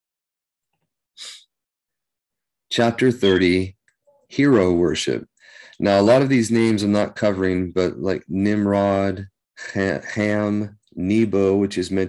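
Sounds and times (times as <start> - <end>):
man sharp breath: 5.4 - 5.8.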